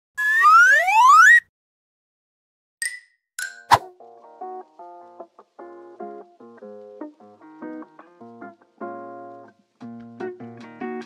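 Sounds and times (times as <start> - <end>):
rising-pitch tone: 0.2 - 1.4.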